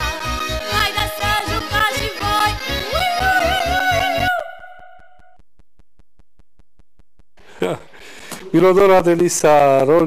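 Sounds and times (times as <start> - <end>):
folk dance music: 0.0 - 4.7.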